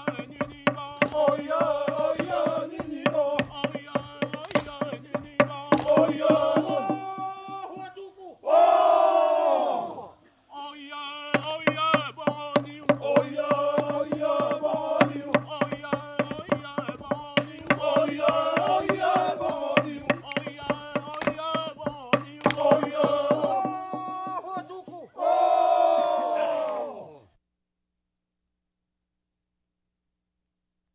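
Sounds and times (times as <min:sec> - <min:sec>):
group of men singing: 0:00.0 - 0:07.9, 0:10.8 - 0:26.4
men's chorus holding a note: 0:00.0 - 0:27.3
loud held group cry: 0:01.1 - 0:03.4, 0:05.8 - 0:07.2, 0:08.4 - 0:10.2, 0:13.0 - 0:15.4, 0:17.8 - 0:20.1, 0:22.5 - 0:23.8, 0:25.1 - 0:27.2.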